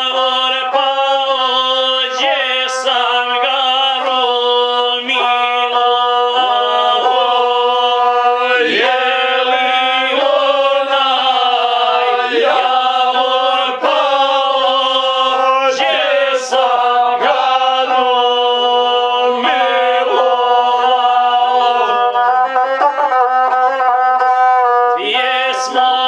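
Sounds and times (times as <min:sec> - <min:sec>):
men singing slow folk chant: 0:00.0 - 0:22.6, 0:25.0 - 0:26.0
bowed single-string fiddle: 0:00.0 - 0:26.0.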